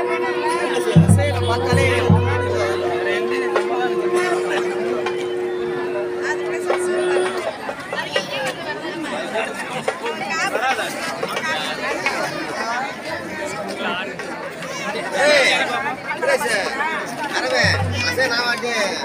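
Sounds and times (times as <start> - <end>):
crowd chattering: 0.0 - 19.0.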